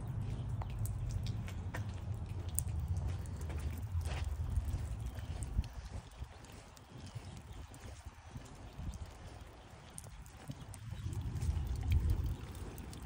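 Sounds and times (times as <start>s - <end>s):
footsteps on grass: 3.0s - 8.3s.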